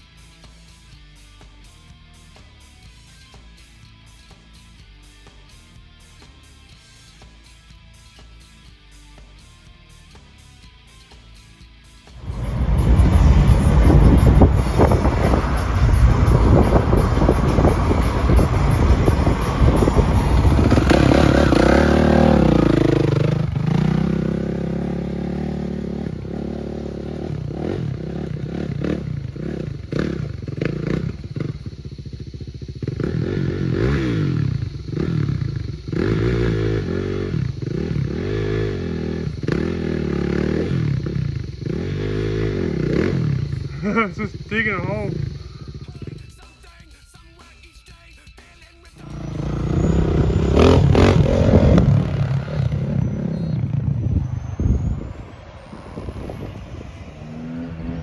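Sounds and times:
vehicle road noise: 9.4 - 47.4, 48.8 - 58.0
dirt bike engine revving: 12.1 - 46.4, 49.0 - 58.0.

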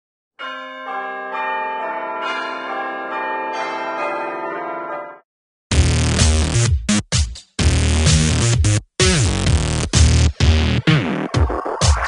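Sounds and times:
bells chiming: 0.4 - 5.2.

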